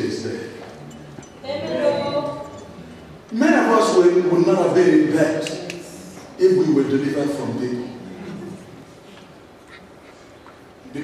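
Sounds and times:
man talking: 0.0s - 0.7s, 3.3s - 5.5s, 6.4s - 8.0s
faint hall noise: 0.0s - 11.0s.

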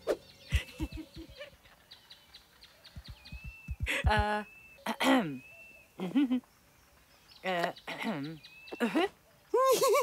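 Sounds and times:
faint bird chirps: 0.0s - 10.0s
soft low thuds: 2.9s - 4.4s.

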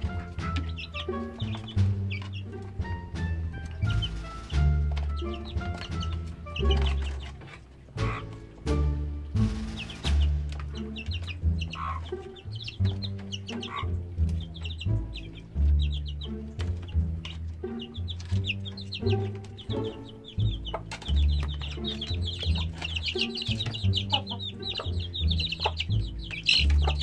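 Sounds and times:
chickens clucking: 0.0s - 27.0s
music with low bass line: 8.0s - 27.0s.

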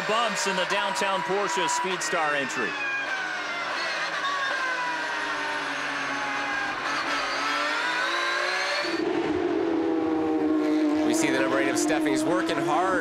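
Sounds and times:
race car engine revving: 0.0s - 13.0s
steady engine note of another car: 2.7s - 13.0s.

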